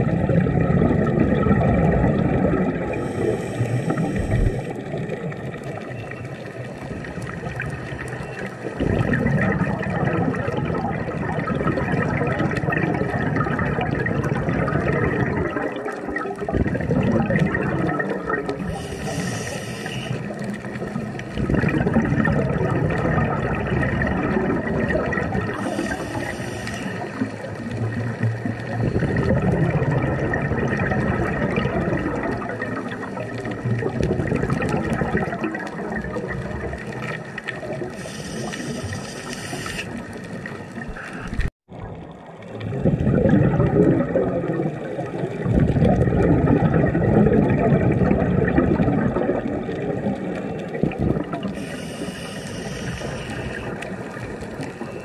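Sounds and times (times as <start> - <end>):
exhaled bubbles gurgling: 0.0 - 55.0
hissing regulator inhalations: 2.9 - 4.8, 18.6 - 20.5, 25.5 - 27.4, 37.9 - 40.1, 51.5 - 54.0.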